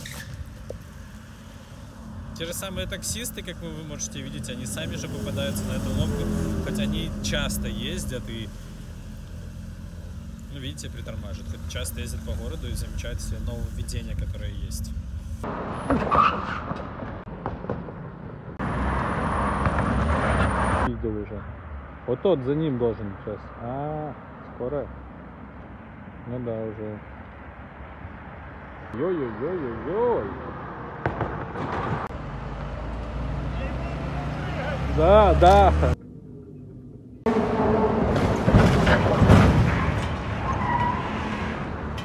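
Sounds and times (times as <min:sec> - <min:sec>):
cars passing: 0:00.0 - 0:42.0
sharp knocks: 0:31.0 - 0:32.1.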